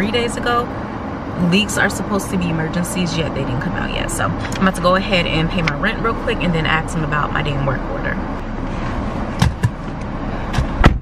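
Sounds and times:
car engine and air conditioning: 0.0s - 11.0s.

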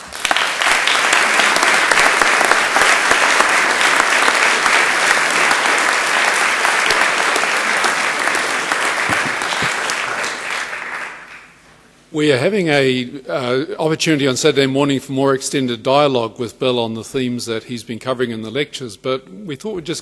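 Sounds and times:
audience applauding: 0.0s - 11.6s.

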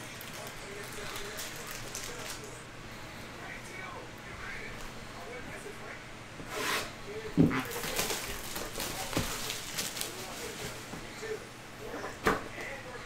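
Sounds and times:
plastic wrap rustling: 0.0s - 2.6s, 7.5s - 11.3s
light taps and crinkles: 7.4s - 11.1s.

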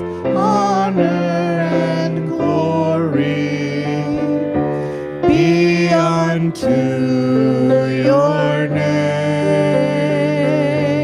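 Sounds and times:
sustained accompaniment: 0.0s - 11.0s
voices singing worship song: 0.0s - 11.0s.

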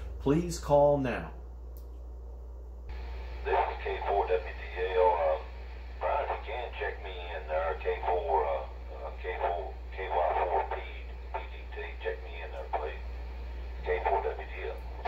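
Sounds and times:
steady low hum: 0.0s - 15.0s
radio speech over speaker: 2.9s - 15.0s.

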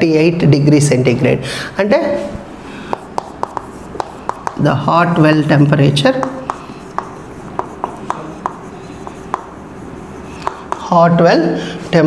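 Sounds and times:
chalk tapping on chalkboard: 2.9s - 5.2s, 6.0s - 11.0s.

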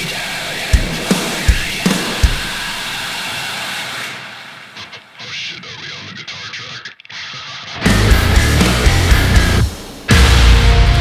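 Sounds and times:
heavy rock instrumental: 7.4s - 11.0s.

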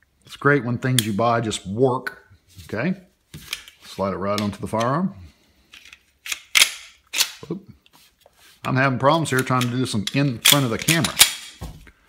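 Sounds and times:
pistol slide scrape: 5.7s - 7.4s.

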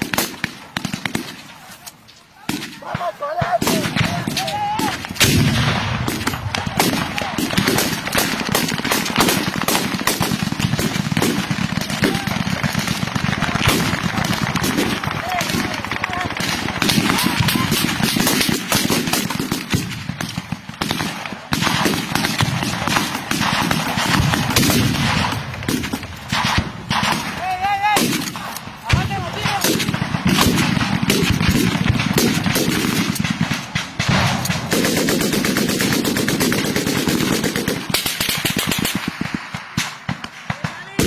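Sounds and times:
small-arms gunfire: 0.0s - 1.7s, 2.4s - 41.0s.

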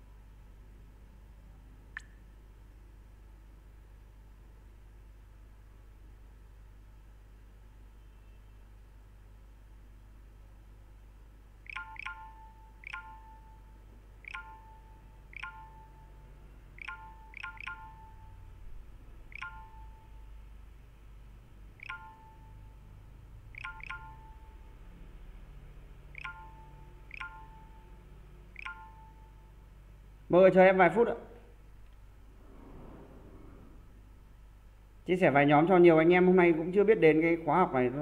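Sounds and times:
faint low hum: 0.0s - 38.0s
electronic notification chimes: 11.7s - 16.2s, 16.8s - 18.5s, 19.3s - 20.2s, 21.8s - 22.8s, 23.5s - 24.7s, 26.2s - 28.0s, 28.6s - 29.5s.

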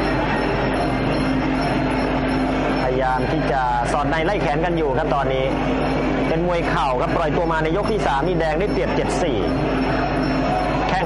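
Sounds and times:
crowd din: 0.0s - 11.0s
held tone: 0.0s - 11.0s.

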